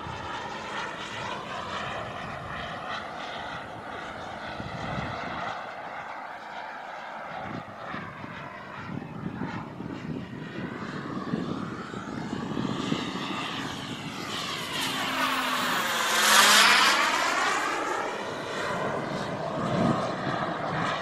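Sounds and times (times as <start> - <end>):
model jet turbine flying overhead: 0.0 - 21.0.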